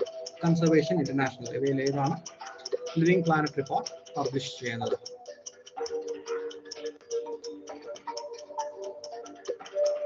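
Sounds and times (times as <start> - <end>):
fast even ticking: 0.0 - 10.0.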